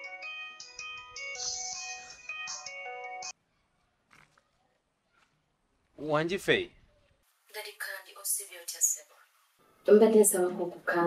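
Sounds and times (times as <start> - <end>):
mobile phone ringtone melody: 0.0 - 3.3.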